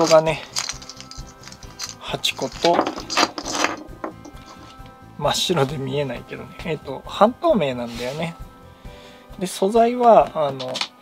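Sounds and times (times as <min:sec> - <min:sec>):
plastic packaging rustling and clicking: 0:00.0 - 0:04.9, 0:10.5 - 0:11.0.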